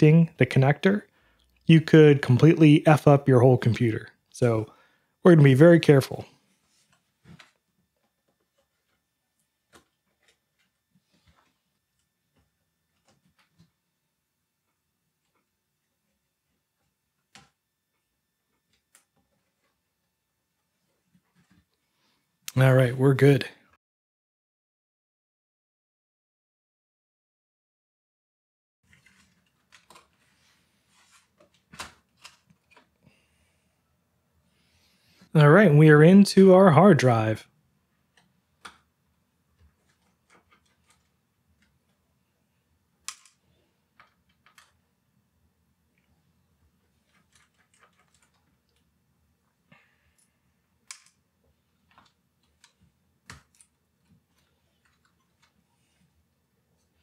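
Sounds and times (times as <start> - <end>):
faint clicks and knocks: 6.8 - 13.8, 38.1 - 42.0, 43.0 - 44.9, 45.9 - 57.0.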